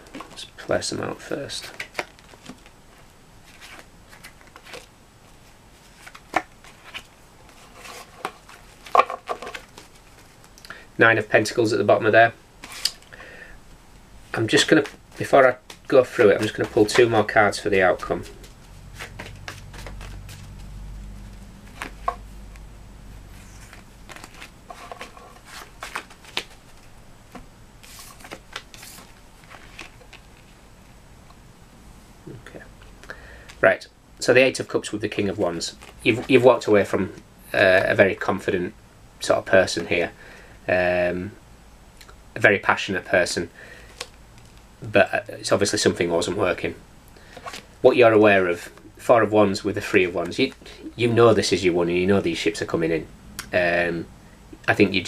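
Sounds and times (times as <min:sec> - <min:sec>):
cards rustling: 0:01.2 - 0:10.7, 0:12.6 - 0:13.1, 0:14.3 - 0:22.6, 0:23.3 - 0:30.6, 0:35.2 - 0:36.9, 0:47.2 - 0:47.7.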